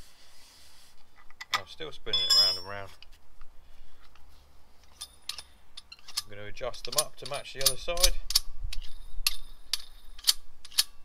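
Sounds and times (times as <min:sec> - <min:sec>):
low steady hum: 0:00.0 - 0:11.0
metallic clicks and clinks: 0:02.1 - 0:02.8, 0:04.9 - 0:11.0.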